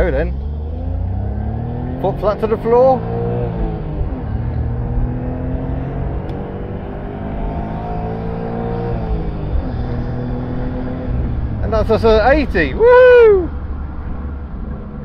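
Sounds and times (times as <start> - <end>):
car engine at full throttle: 0.0 - 15.0.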